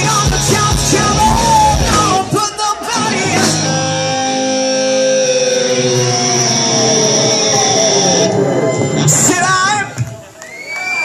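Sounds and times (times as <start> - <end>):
electric guitars ringing chord: 0.3 - 8.3.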